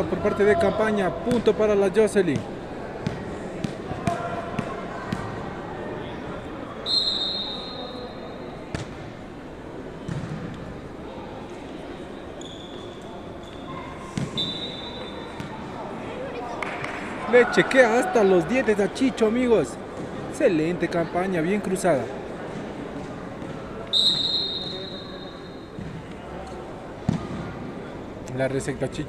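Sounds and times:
murmur of voices: 0.0s - 29.0s
ball thuds on hands and court: 27.1s - 27.5s.

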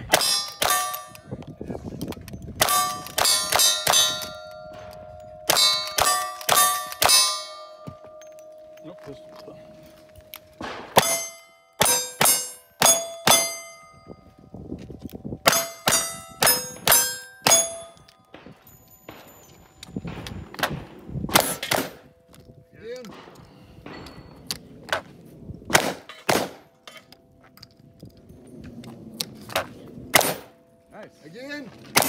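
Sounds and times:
steel plate ringing: 0.1s - 1.3s, 2.6s - 14.4s, 15.4s - 19.8s.

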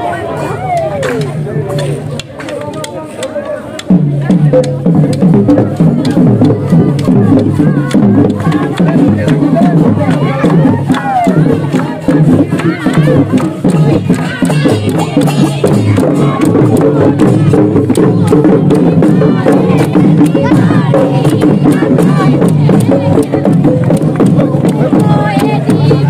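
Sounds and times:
crowd voices: 0.0s - 26.0s
group of voices: 0.0s - 26.0s
sharp clapping: 0.7s - 5.3s, 5.9s - 18.5s
fast drum beat: 3.8s - 26.0s.

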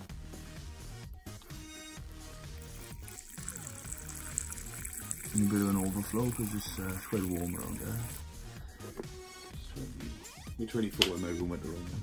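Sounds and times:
background music: 0.0s - 12.0s
water trickling into dish: 2.6s - 8.2s.

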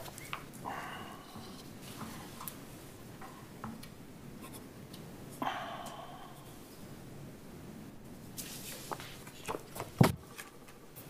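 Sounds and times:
papers rustling: 0.0s - 0.6s.

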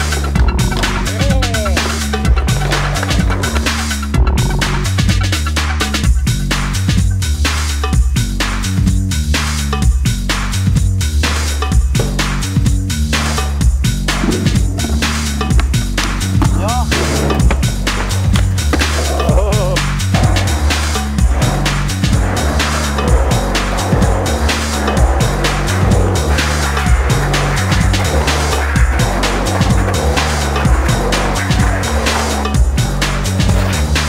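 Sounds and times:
skateboard knocks and landings: 0.0s - 3.9s, 11.6s - 34.0s
music with repeating bass line: 0.0s - 34.0s
skateboard wheels rolling on concrete: 0.0s - 34.0s.

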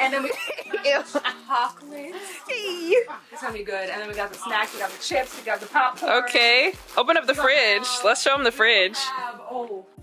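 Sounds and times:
women talking and laughing: 0.0s - 8.3s
quiet background music: 0.0s - 10.0s.

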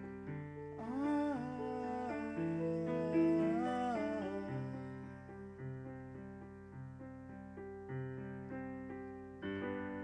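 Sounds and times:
sustained piano chords: 0.0s - 10.0s
man singing long notes: 0.8s - 5.2s.

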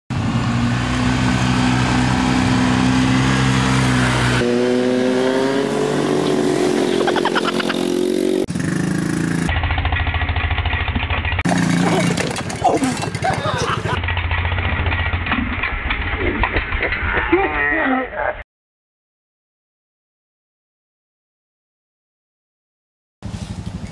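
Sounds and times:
atv engines revving: 0.1s - 9.9s, 11.3s - 15.1s.

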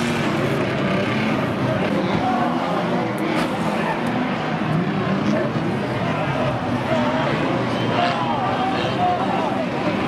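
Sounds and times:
race car engines running: 0.0s - 10.0s.

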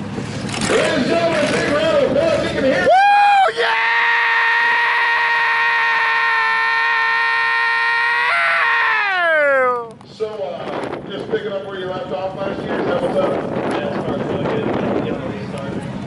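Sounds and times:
person yelling: 2.8s - 9.9s.

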